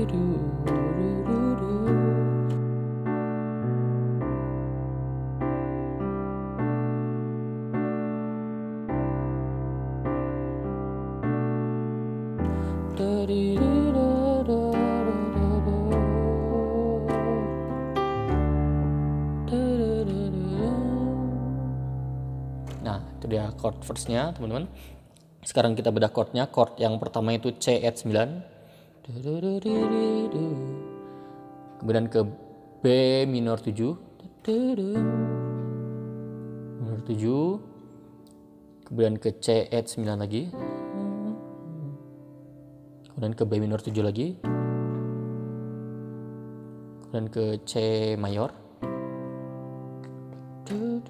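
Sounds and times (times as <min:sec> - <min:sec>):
piano playing slow chords: 0:00.0 - 0:25.6, 0:29.1 - 0:51.0.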